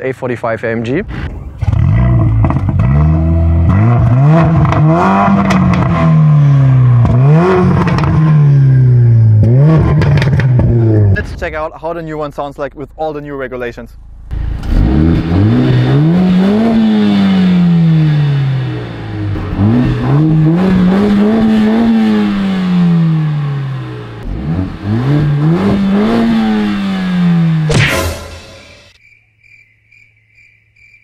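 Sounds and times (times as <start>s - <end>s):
exhaust crack: 0.9s - 29.0s
car engine revving: 1.0s - 11.5s, 14.0s - 29.0s
crickets chirping: 29.0s - 31.0s.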